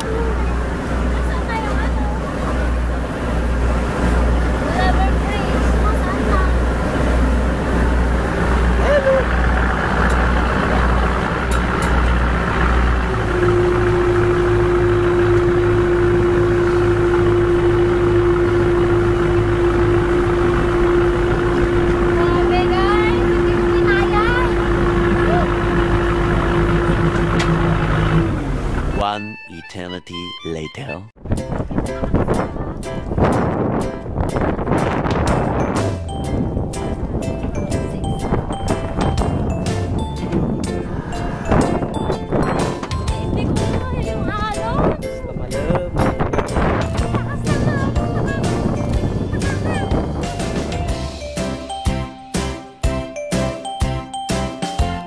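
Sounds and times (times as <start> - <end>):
boat engine running: 0.0 - 55.0.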